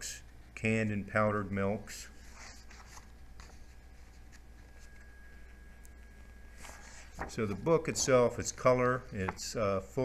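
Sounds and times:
steady low hum: 0.0 - 10.0
soft brushes: 1.9 - 9.4
book pages rustling: 2.2 - 5.6, 6.5 - 8.6.

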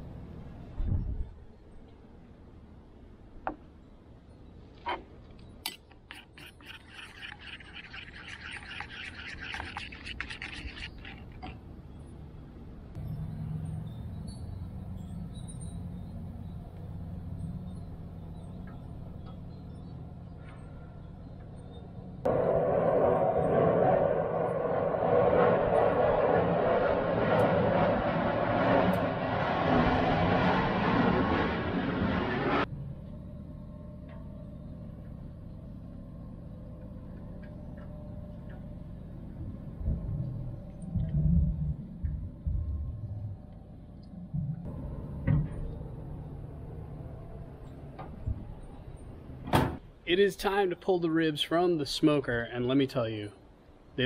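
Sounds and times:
metal spoon stirring in metal cup: 5.7 - 11.6.

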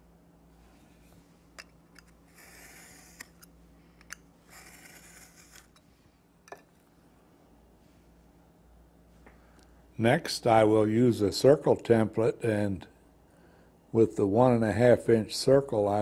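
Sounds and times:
blade and ruler clicks: 1.6 - 5.8
craft knife slicing board: 2.3 - 3.4, 4.5 - 5.8.

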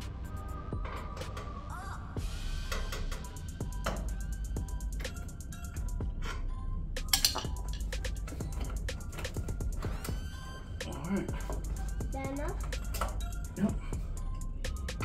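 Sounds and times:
music with steady beat: 0.0 - 15.0
voice in music: 0.0 - 15.0.

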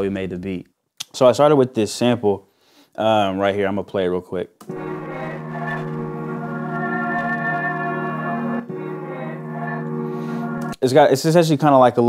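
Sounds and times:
sustained ominous chord tones: 4.6 - 10.8.

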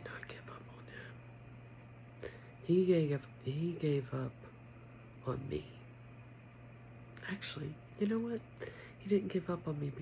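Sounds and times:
woman whispering: 0.0 - 1.2, 7.2 - 8.6
steady low hum: 0.0 - 10.0
faint breathy sounds: 2.2 - 2.6, 8.5 - 9.0.

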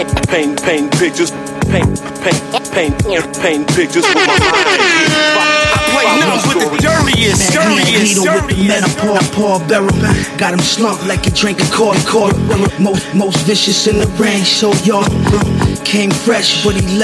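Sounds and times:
rapping over a beat: 0.0 - 17.0
steady kick drum: 5.6 - 9.0, 11.2 - 12.9, 15.1 - 15.8.

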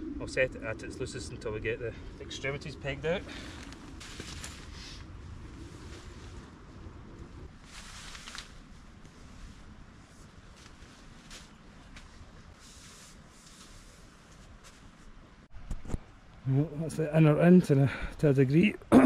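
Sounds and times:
wind rumble on microphone: 0.0 - 11.3
tent fabric rustling: 3.5 - 6.5, 7.4 - 15.2.

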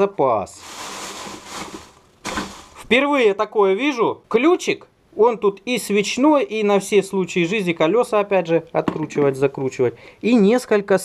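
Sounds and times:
plastic bag rustling: 0.5 - 3.0.

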